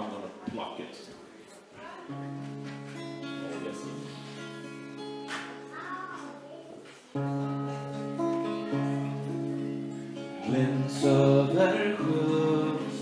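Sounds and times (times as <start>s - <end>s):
guitar chord strummed: 2.1s - 5.8s, 7.2s - 13.0s
acoustic guitar plucked: 2.1s - 6.5s, 7.1s - 13.0s.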